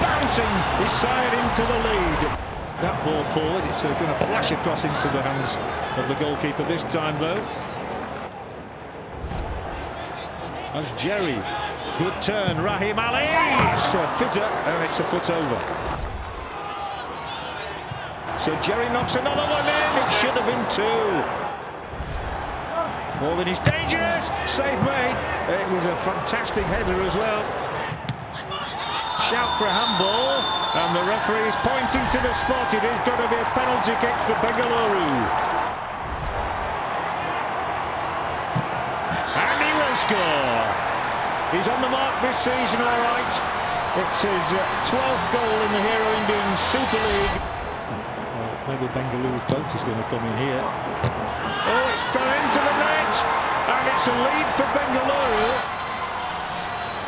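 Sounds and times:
football match broadcast noise: 0.0s - 57.0s
transition swoosh: 9.2s - 9.7s.

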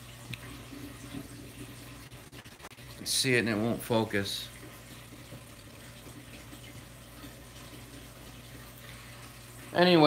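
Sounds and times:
aquarium water rushing: 0.0s - 10.0s
low pump hum: 0.0s - 10.0s.

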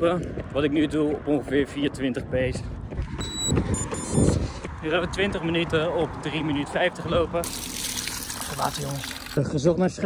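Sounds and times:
watch beeping: 3.2s - 4.4s.

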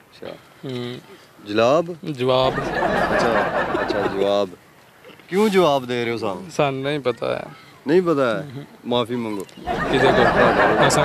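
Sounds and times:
men laughing: 2.3s - 4.4s, 9.6s - 11.0s
men talking over one another: 5.2s - 11.0s.

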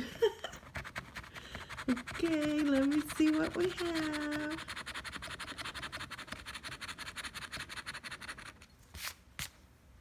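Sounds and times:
scraping scratch-off ticket: 0.7s - 8.6s.

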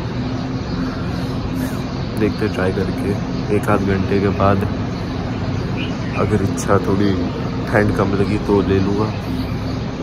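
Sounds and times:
faint drone: 0.0s - 10.0s
low mechanical hum: 0.0s - 10.0s.

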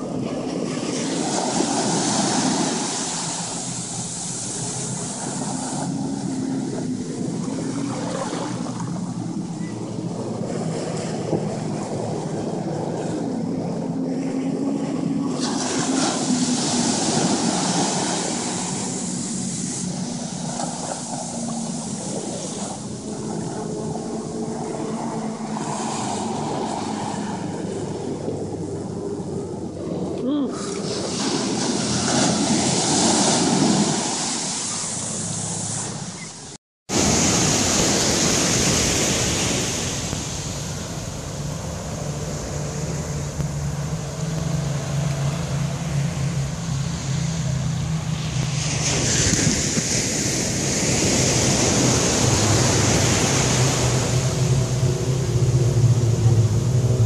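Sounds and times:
ocean surf breaking: 0.0s - 57.0s
wind on microphone: 0.0s - 57.0s.

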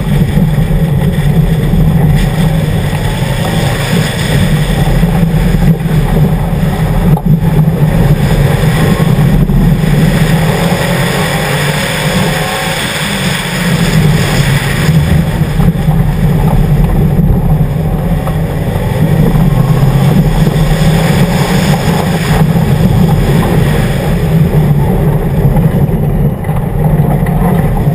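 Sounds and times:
car engine running hard: 0.0s - 27.9s
tyres on gravel road noise: 0.0s - 27.9s.

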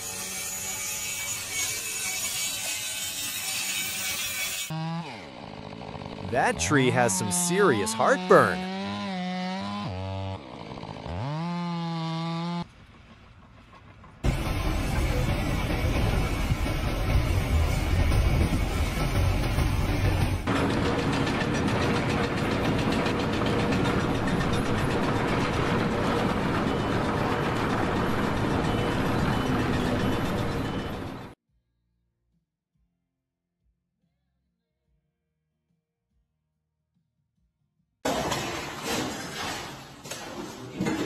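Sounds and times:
chainsaw revving: 4.7s - 6.3s, 8.2s - 12.6s.

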